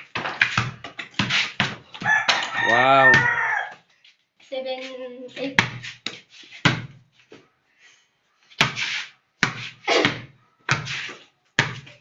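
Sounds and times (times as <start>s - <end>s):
basketball bouncing on concrete: 0.0s - 3.9s, 5.4s - 7.4s, 8.6s - 8.8s, 9.4s - 12.0s
rooster crowing: 2.0s - 3.8s.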